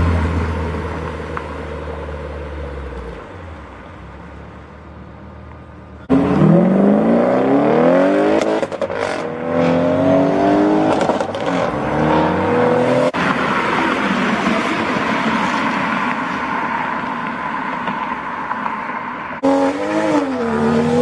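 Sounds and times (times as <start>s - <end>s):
car engine revving unevenly: 6.0s - 13.2s, 19.4s - 21.0s
rough car accelerating away: 6.0s - 13.2s.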